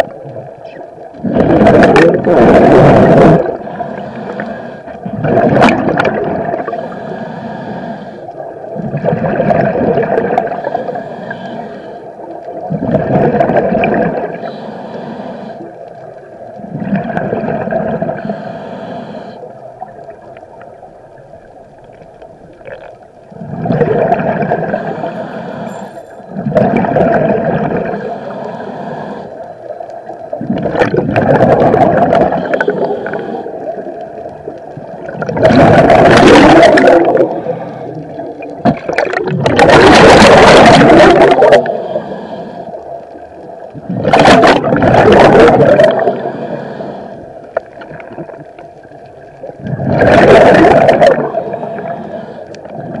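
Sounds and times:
exhaled bubbles gurgling: 0.0s - 14.6s, 15.5s - 53.0s
scuba regulator breathing underwater: 1.2s - 5.5s, 6.4s - 12.3s, 13.4s - 15.9s, 17.4s - 19.9s, 23.4s - 34.2s, 35.1s - 43.2s, 43.8s - 48.6s, 49.6s - 53.0s.

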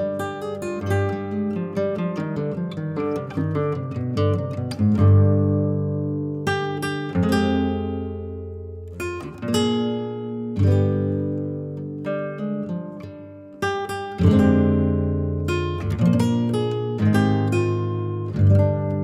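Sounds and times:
acoustic guitar picking and strumming: 0.0s - 19.0s.

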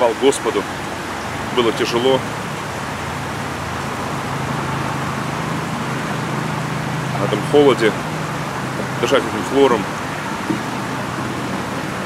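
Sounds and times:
distant road traffic: 0.0s - 12.0s.

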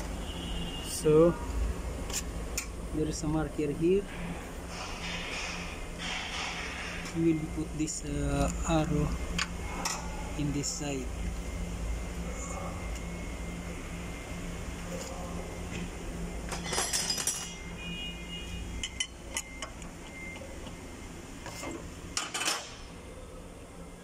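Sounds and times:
steady low hum: 0.0s - 24.0s
metal tools clinking: 16.5s - 17.6s.

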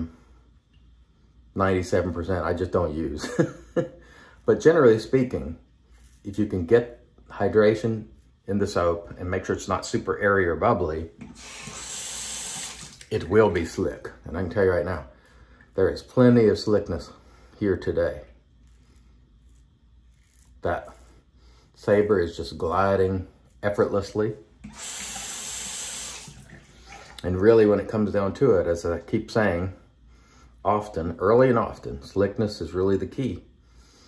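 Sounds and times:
water running from sink tap: 11.2s - 13.4s, 24.6s - 27.2s.

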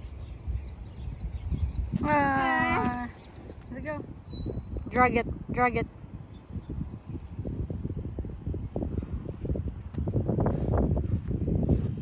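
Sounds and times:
small bird chirping: 0.0s - 2.0s, 3.0s - 4.7s
wind rumble on microphone: 0.0s - 12.0s.

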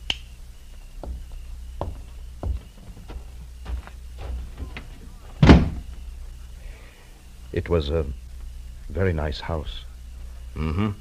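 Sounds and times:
low steady hum: 0.0s - 11.0s
soft knocks: 1.0s - 5.8s.

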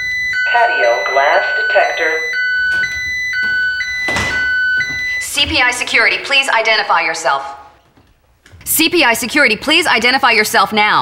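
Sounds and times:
two-tone alarm beeping: 0.0s - 6.4s.

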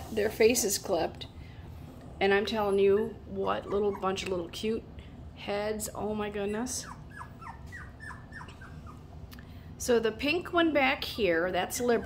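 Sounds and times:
puppies whimpering: 2.7s - 4.3s, 6.4s - 9.2s.

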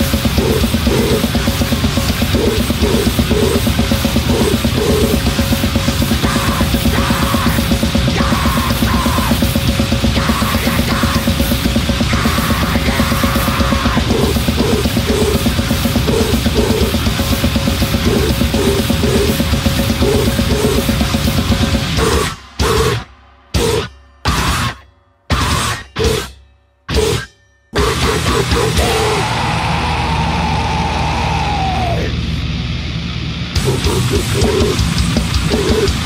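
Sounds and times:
fast drumming: 0.0s - 26.3s, 27.8s - 32.0s, 33.6s - 36.0s
distorted guitar: 0.0s - 36.0s
grindcore band playing: 0.0s - 36.0s.

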